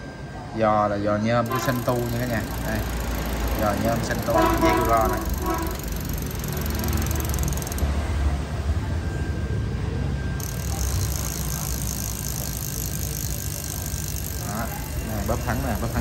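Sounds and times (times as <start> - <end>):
bicycle belt drive whirring: 0.8 - 9.6, 10.4 - 16.0.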